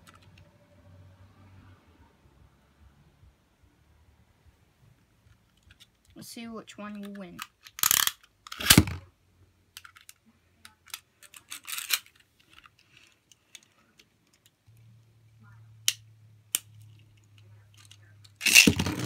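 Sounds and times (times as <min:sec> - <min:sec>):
plastic clicks and rattles: 0:06.9 - 0:09.1, 0:09.7 - 0:14.7
faint low hum: 0:08.9 - 0:19.0.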